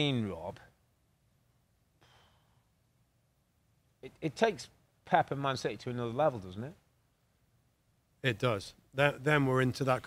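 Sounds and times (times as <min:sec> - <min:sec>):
soft breath into microphone: 0:02.0 - 0:02.9.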